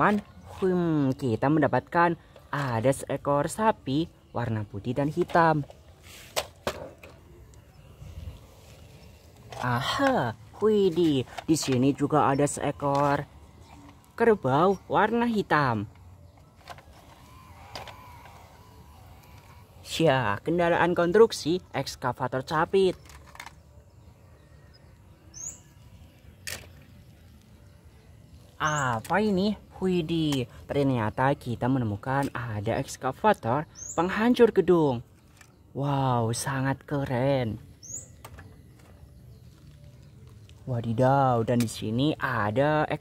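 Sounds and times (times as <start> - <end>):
faint outdoor background noise: 0.0 - 43.0.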